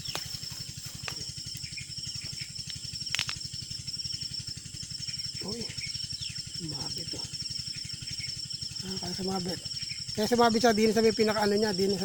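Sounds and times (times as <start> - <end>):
high-pitched insect trill: 0.0 - 12.0
low pulsing hum: 0.0 - 12.0
sharp clicks: 2.6 - 3.4.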